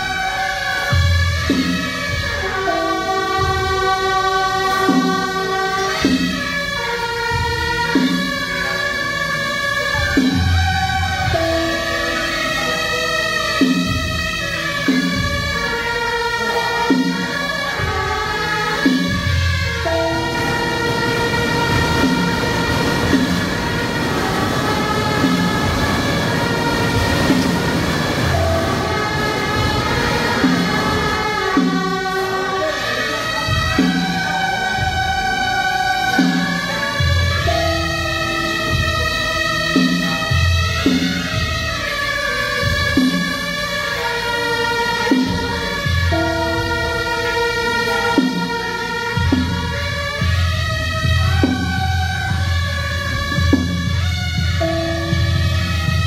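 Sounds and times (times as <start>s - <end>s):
reedy wind instrument long notes: 0.0s - 56.0s
drum beat: 0.8s - 44.2s, 44.8s - 56.0s.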